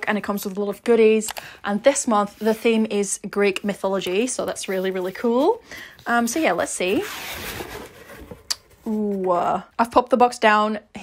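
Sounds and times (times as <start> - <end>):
cardboard box lid scraping: 4.8 - 8.8.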